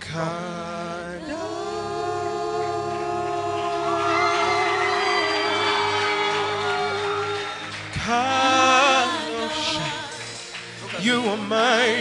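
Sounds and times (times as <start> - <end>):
low musical accompaniment: 0.0 - 12.0
voices singing: 0.0 - 12.0
person singing long note: 1.2 - 7.4, 8.2 - 10.2.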